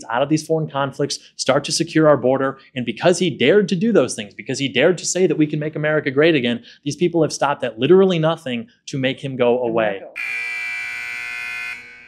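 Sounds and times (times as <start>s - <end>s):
timer buzzer: 10.2s - 12.0s.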